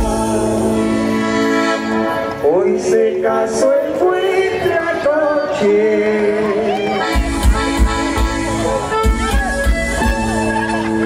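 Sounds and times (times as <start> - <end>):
accordion dance music: 0.0 - 11.0.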